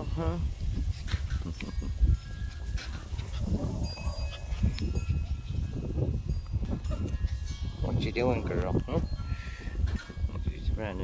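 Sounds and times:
wind or handling rumble: 0.0 - 11.0
puppies whining and yipping: 1.0 - 7.5.

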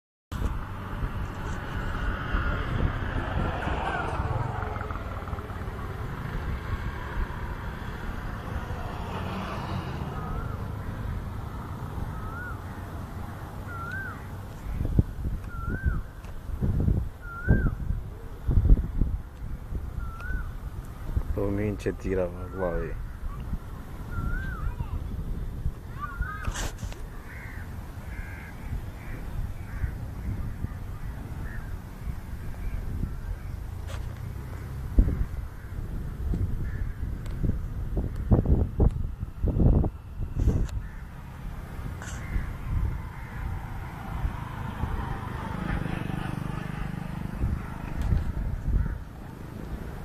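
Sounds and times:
wind on microphone: 0.3 - 50.0
whistled bird call: 12.1 - 12.6, 13.7 - 14.3, 15.5 - 16.1, 17.2 - 17.8, 20.0 - 20.5, 24.1 - 24.9, 26.0 - 26.5
bird calls: 12.1 - 13.0, 13.6 - 16.3, 17.2 - 18.4, 19.4 - 21.2, 22.4 - 25.2, 25.8 - 35.9, 42.0 - 43.7
caw-like bird calls: 13.7 - 14.9, 25.9 - 31.8, 36.6 - 38.5, 40.8 - 41.3, 42.0 - 44.0, 48.7 - 49.2.

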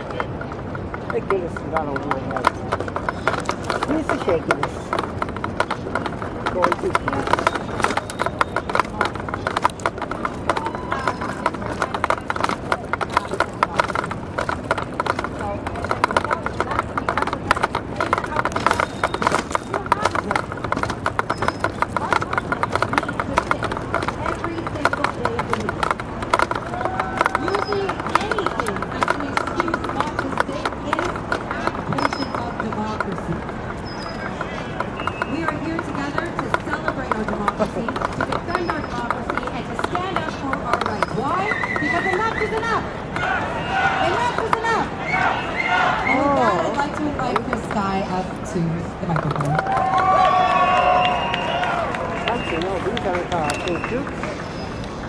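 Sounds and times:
distant voices: 0.0 - 55.0
footsteps on paved path: 0.0 - 55.0.

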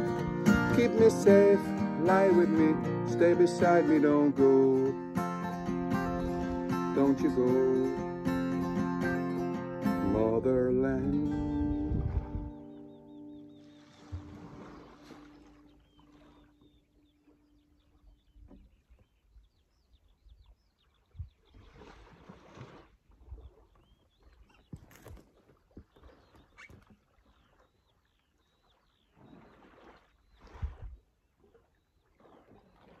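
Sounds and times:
high bird chirps: 12.5 - 21.6.

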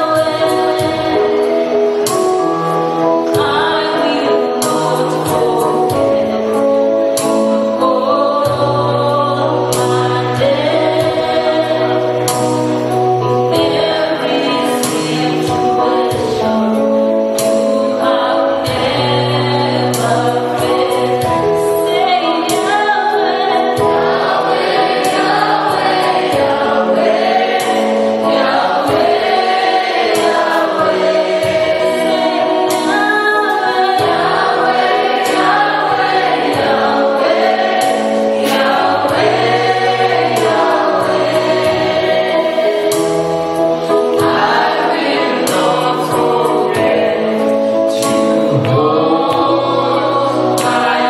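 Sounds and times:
woman singing: 0.0 - 1.5, 3.2 - 6.7, 7.8 - 12.3, 13.5 - 17.1, 17.7 - 24.1, 30.2 - 35.7
keyboard accompaniment: 0.0 - 51.0
backing vocalists singing: 17.9 - 51.0.

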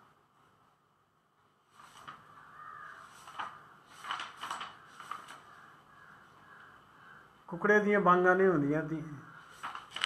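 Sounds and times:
bird calling: 2.2 - 3.8, 4.8 - 7.4.

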